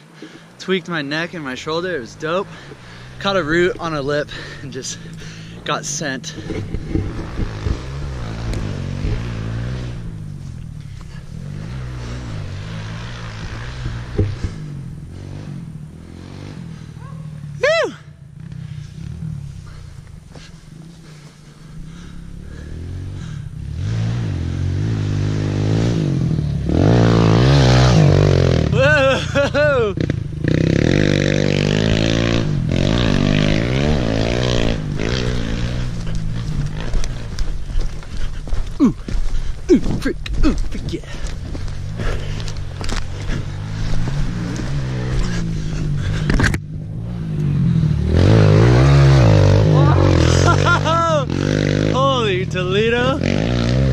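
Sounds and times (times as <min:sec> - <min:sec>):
motorbike engine revving: 0:02.2 - 0:53.9.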